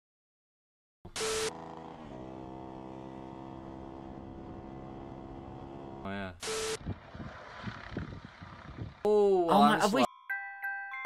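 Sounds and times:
motor scooter engine running: 1.1 - 9.1.

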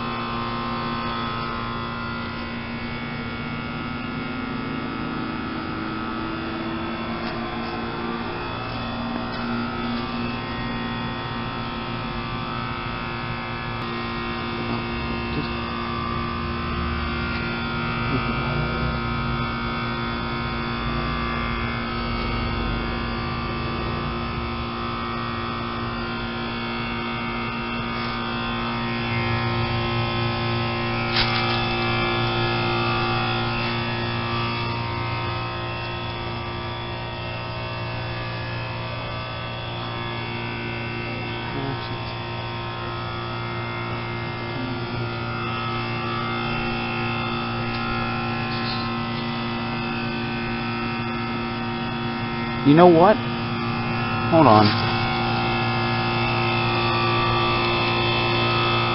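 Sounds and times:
heat pump hum and buzz: 0.0 - 58.9.

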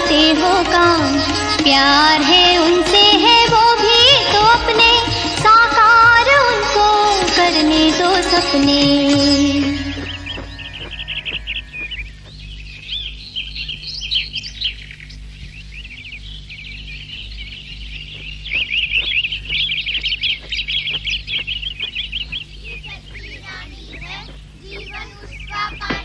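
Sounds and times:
birds chirping: 0.0 - 26.0
faint low hum: 0.4 - 26.0.

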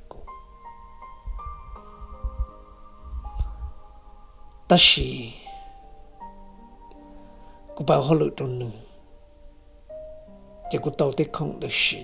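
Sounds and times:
soft held keyboard notes: 0.0 - 12.0
low thumping pulses: 1.2 - 4.5.

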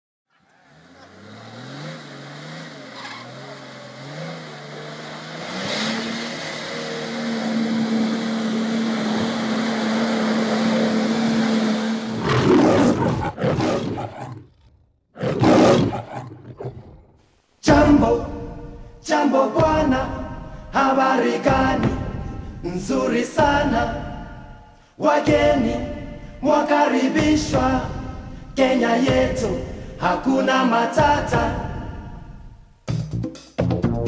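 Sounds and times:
roar-like bursts: 0.5 - 17.2
low drone: 2.1 - 12.5.

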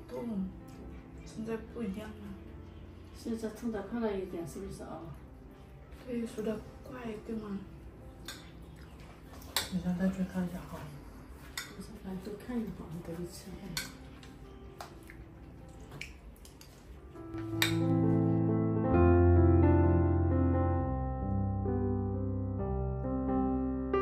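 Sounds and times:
piano music: 0.0 - 24.0
cutlery clinking against bowls: 8.2 - 10.1, 10.7 - 12.4, 13.6 - 16.9, 17.5 - 17.9.

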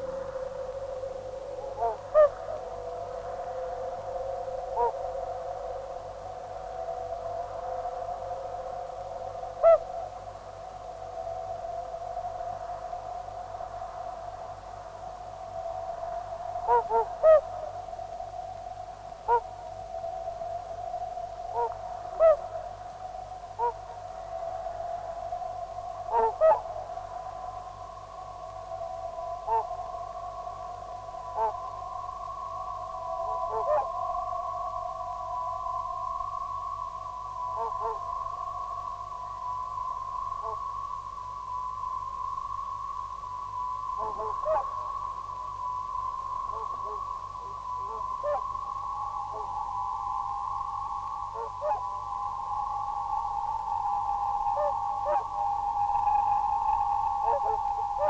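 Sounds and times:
electronic drone: 39.4 - 58.0
higher held electronic tone: 39.4 - 58.0.

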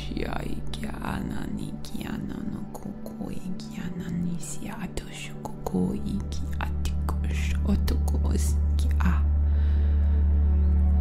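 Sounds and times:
low droning music: 0.0 - 11.0.

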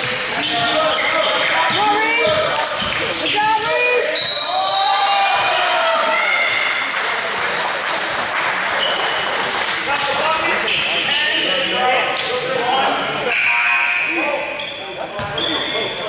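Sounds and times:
sneakers squeaking on court: 0.0 - 4.8, 8.8 - 11.8, 13.8 - 16.0.

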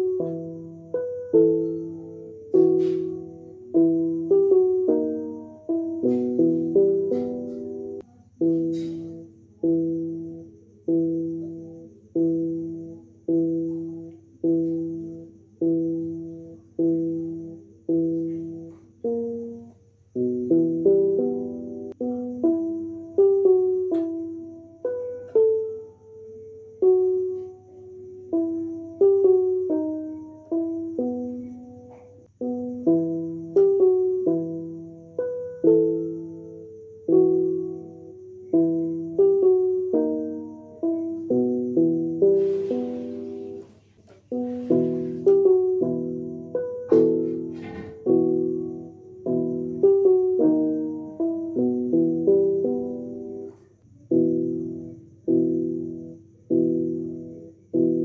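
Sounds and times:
keyboard playing slow notes: 0.0 - 58.0.

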